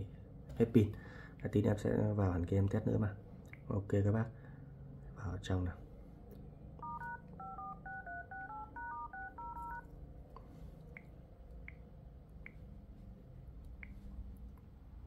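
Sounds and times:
phone keypad tones: 6.8s - 9.9s.

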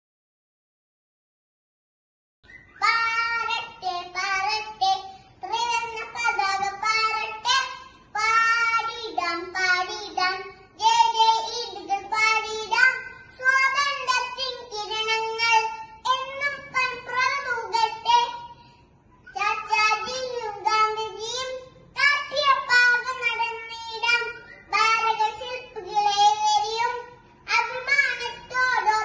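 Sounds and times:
girl singing unaccompanied: 2.6s - 18.6s, 19.3s - 29.0s.

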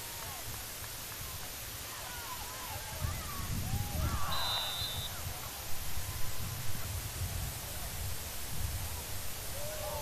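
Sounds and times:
spectators shouting and cheering: 1.8s - 6.4s
referee's whistle blast: 4.2s - 5.2s.

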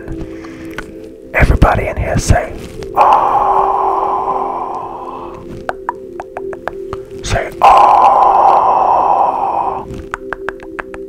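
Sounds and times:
soft background music: 0.0s - 11.0s
breathy ahh into microphone: 2.9s - 5.7s, 7.2s - 10.1s.

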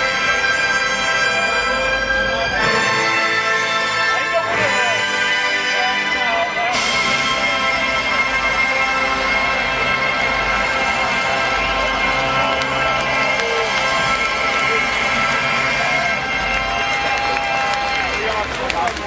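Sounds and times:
crowd cheering and shouting: 0.0s - 5.0s, 5.8s - 19.0s
loud concert music over pa: 0.0s - 19.0s.

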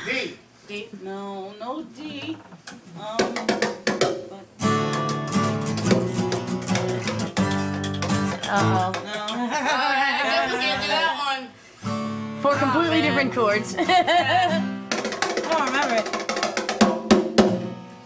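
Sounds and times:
acoustic guitar strumming: 3.8s - 9.7s, 10.3s - 18.0s
person singing: 8.3s - 9.6s.

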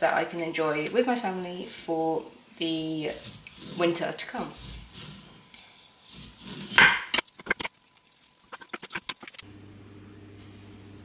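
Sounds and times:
knife chopping on wooden board: 6.1s - 7.1s.

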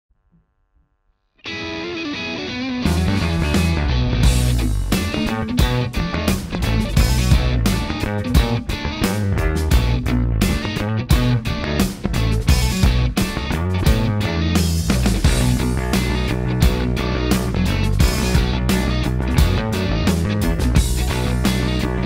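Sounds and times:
band track: 1.4s - 22.0s
electric bass guitar: 1.4s - 22.0s
drums playing steady beat: 2.9s - 22.0s.

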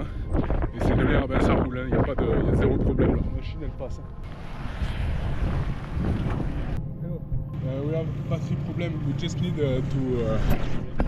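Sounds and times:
wind buffeting microphone: 0.0s - 7.5s.

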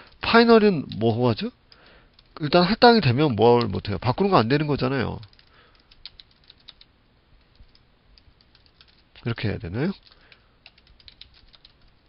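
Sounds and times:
computer keyboard keystrokes: 1.7s - 2.4s, 5.2s - 9.3s, 10.0s - 12.0s.

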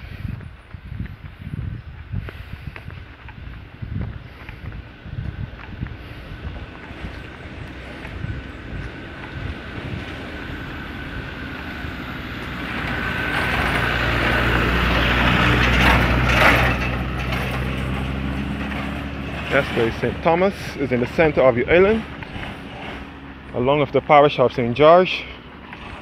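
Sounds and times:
truck driving past: 3.0s - 26.0s.

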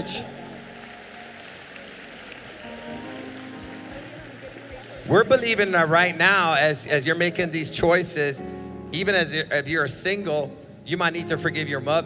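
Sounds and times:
congregation clapping: 0.0s - 7.0s
soft keyboard chords: 0.0s - 12.0s.

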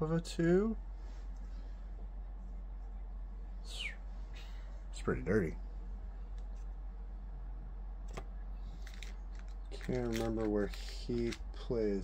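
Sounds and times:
low hum: 0.0s - 12.0s.

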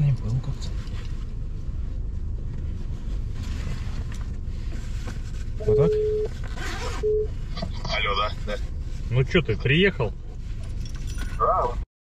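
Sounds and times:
telephone call beeps: 5.6s - 6.3s.

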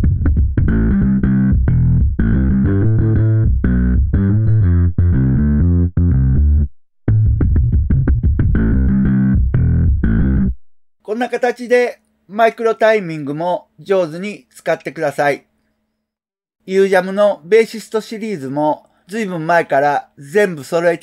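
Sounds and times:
slap bass riff: 0.0s - 10.6s.

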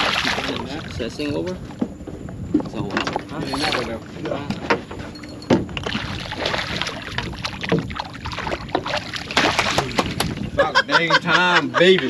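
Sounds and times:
fish splashing at water surface: 0.0s - 1.2s, 5.7s - 10.6s.

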